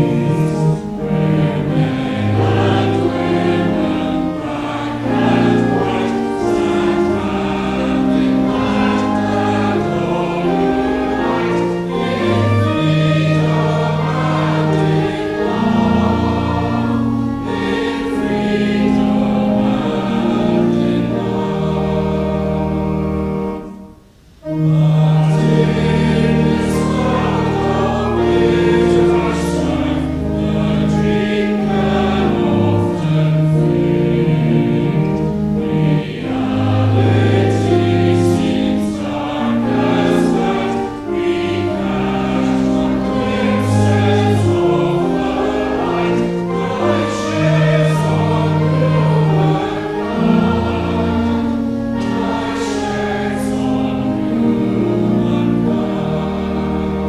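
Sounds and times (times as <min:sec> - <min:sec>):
choir singing a hymn: 0:00.0 - 0:57.0
organ accompaniment: 0:00.0 - 0:57.0.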